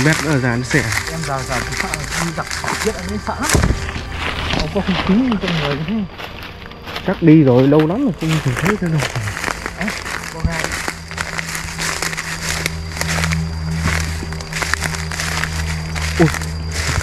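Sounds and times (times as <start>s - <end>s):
footsteps crunching through dry leaves: 0.0s - 17.0s
low droning background music: 0.0s - 17.0s.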